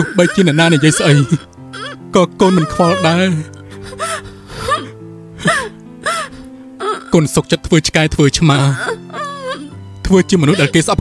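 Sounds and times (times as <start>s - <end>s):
person speaking: 0.0s - 3.7s, 6.9s - 11.0s
person sobbing: 0.0s - 7.2s, 8.7s - 9.8s, 10.4s - 10.8s
soft background music: 0.0s - 11.0s.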